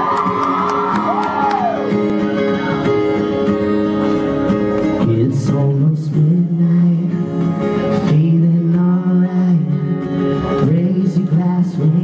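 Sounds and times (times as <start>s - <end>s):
crowd shout or whoop: 0.0s - 3.0s
strummed acoustic guitar chords: 0.0s - 12.0s.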